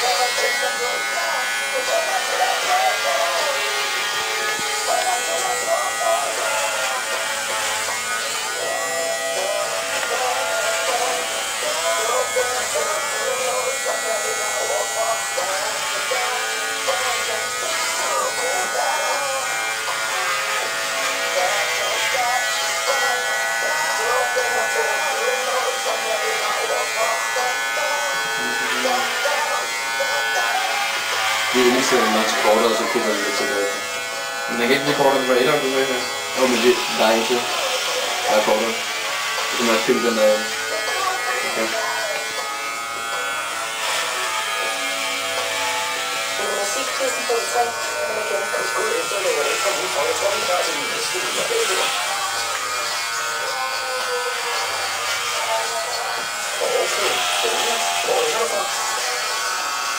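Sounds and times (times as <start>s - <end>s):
music with singing voice: 0.0s - 33.8s, 35.9s - 45.7s, 47.9s - 59.5s
electric hair clippers buzzing: 0.0s - 59.9s.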